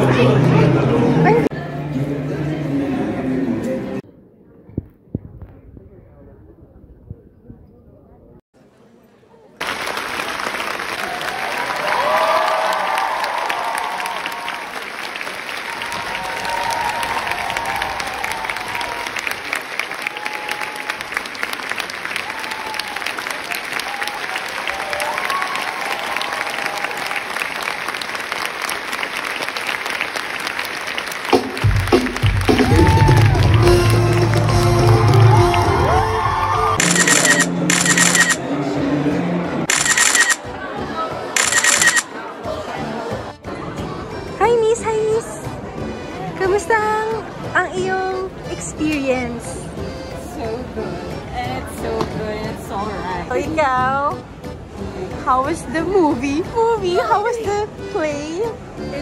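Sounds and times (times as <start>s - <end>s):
audience applauding: 9.6s - 38.4s
whoops: 11.0s - 14.7s, 15.7s - 19.1s, 20.0s - 21.0s, 22.2s - 23.2s, 23.8s - 27.3s, 32.5s - 33.8s, 34.8s - 36.8s
loud music: 31.3s - 37.6s.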